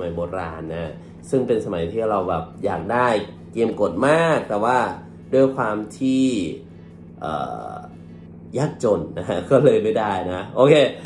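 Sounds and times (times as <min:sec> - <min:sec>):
man speaking: 0:00.0 - 0:06.6, 0:07.2 - 0:11.0.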